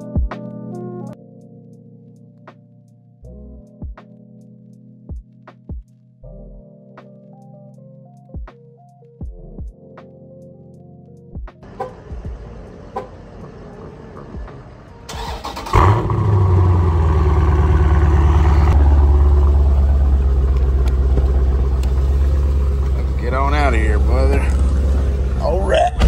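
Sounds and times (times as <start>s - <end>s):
car engine starting and idling: 11.7s - 26.0s.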